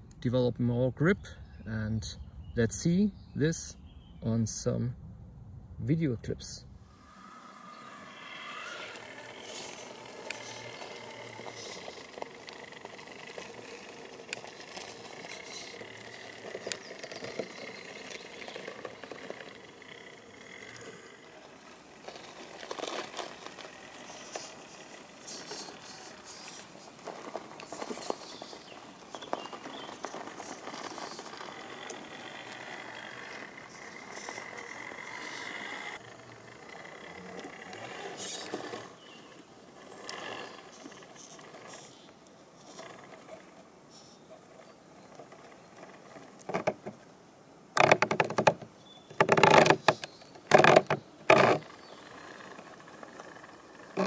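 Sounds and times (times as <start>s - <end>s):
electric motor gear whine: 6.8s - 46.9s, 47.7s - 54.0s
grit crackling under tyres: 6.8s - 54.0s.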